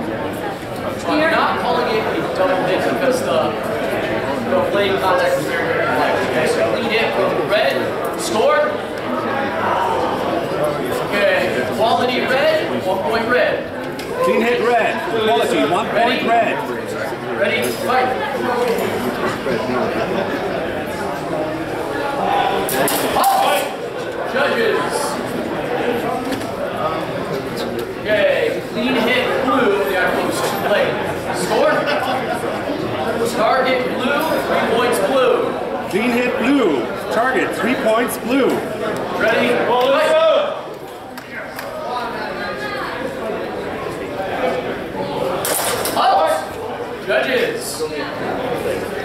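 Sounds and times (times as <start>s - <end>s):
voices in a large hall: 0.0s - 49.0s.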